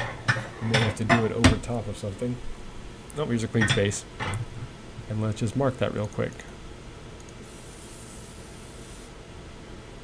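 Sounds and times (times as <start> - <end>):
laser hissing on metal: 7.4 - 9.1.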